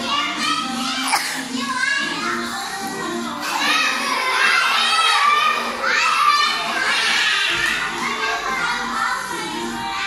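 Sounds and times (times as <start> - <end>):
children calling out and chattering: 0.0 - 10.0
children's song: 0.0 - 10.0.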